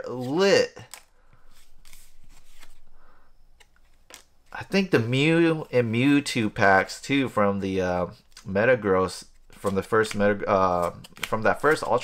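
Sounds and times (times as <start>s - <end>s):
trading cards clicking and rustling: 8.3s - 12.0s.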